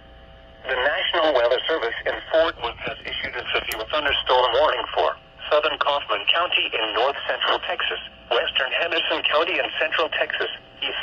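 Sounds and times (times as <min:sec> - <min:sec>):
broadcast voice through radio speaker: 0:00.6 - 0:11.0.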